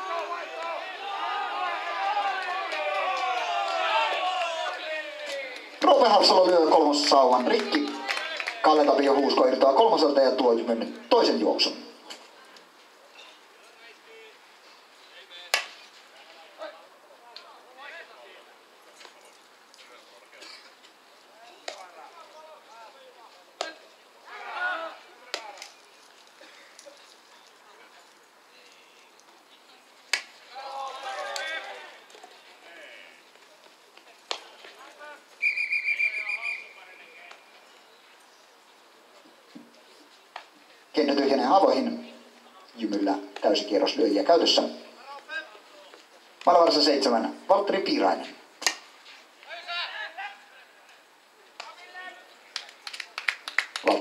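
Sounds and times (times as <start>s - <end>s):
distant shouts: 0.0s - 9.3s, 21.3s - 25.7s, 28.6s - 33.3s, 34.3s - 37.6s, 49.4s - 52.4s
whistle blast: 35.4s - 36.8s.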